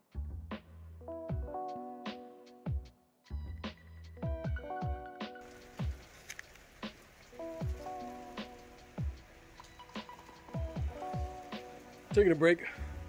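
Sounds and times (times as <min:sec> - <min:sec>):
electronic music with held chords: 0:01.0 - 0:13.0
deep falling drum beat: 0:04.2 - 0:09.3, 0:09.9 - 0:13.0
steady rain falling: 0:05.4 - 0:13.0.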